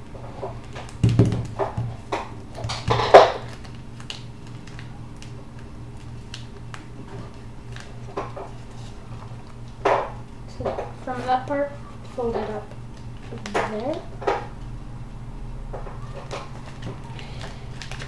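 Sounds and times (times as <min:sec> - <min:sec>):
steady low hum: 0:00.0 - 0:18.0
paper rustling and creasing: 0:00.2 - 0:09.7, 0:16.0 - 0:18.0.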